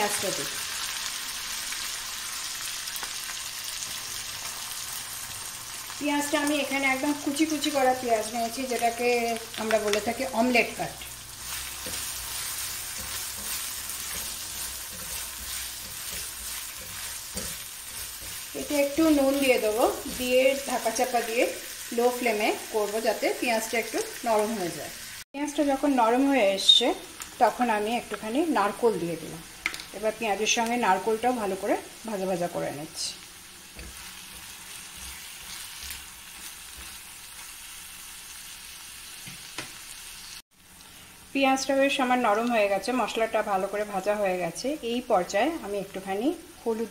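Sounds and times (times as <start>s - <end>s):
food sizzling in hot oil: 0.0s - 46.9s
spatula scraping wok: 10.3s - 21.9s, 33.0s - 40.4s.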